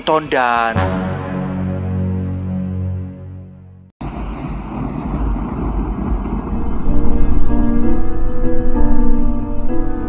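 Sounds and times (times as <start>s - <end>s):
held music notes: 0.7s - 10.0s
rumble of traffic noise: 4.0s - 10.0s.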